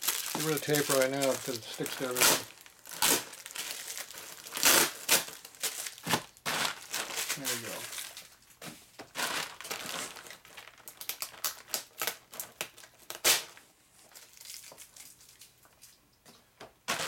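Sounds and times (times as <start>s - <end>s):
bubble wrap crinkling: 0.0s - 15.9s.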